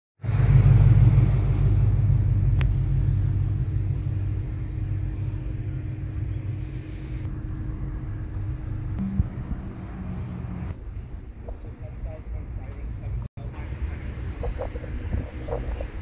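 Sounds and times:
car engine idling: 0.3 - 16.0.

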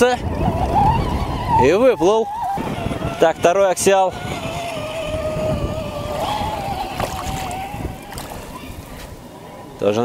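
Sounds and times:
electric motor whining: 0.2 - 8.5
water sloshing: 2.0 - 9.5.

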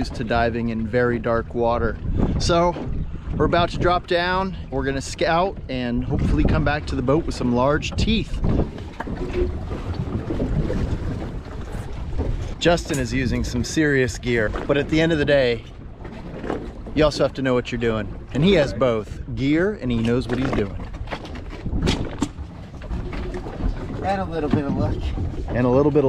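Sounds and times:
water around a boat: 0.0 - 26.0
waves washing against hull: 0.0 - 26.0
wind buffeting microphone: 0.0 - 26.0.

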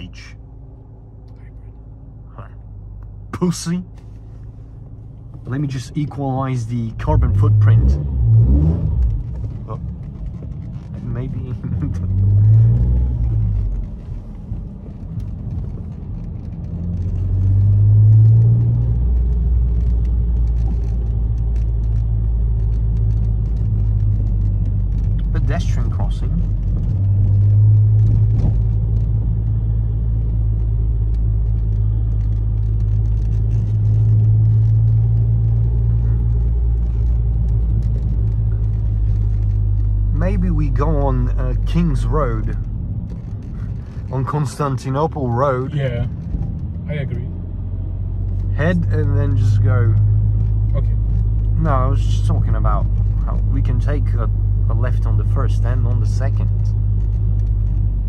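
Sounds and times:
car engine droning inside cabin: 0.0 - 58.0.

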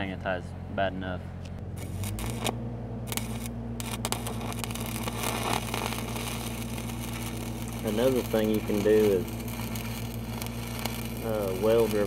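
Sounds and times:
welding machine engine hum: 1.6 - 12.0
welding arc crackling: 1.7 - 12.0.

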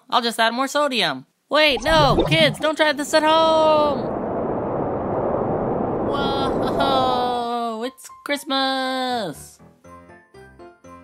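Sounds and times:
steady rushing noise blast: 1.7 - 7.4.

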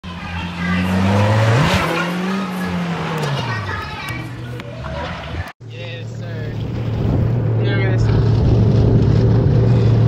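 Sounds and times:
car engine revving: 0.1 - 5.2, 5.9 - 10.0.

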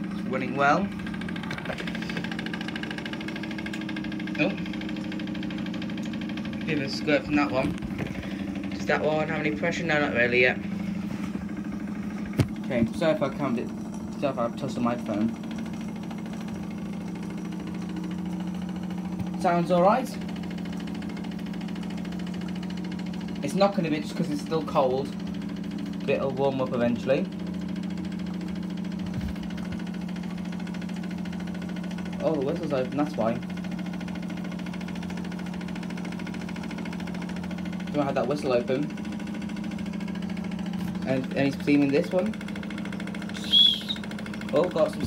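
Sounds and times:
toy steam engine running: 43.2 - 45.0.

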